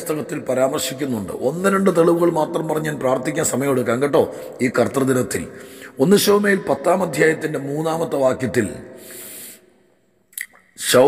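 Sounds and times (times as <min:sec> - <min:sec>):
man speaking: 0:00.0 - 0:08.8, 0:10.4 - 0:11.0.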